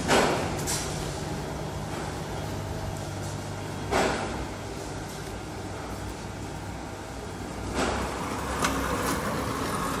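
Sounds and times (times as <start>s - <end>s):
pallet truck rolling over concrete: 7.6s - 10.0s.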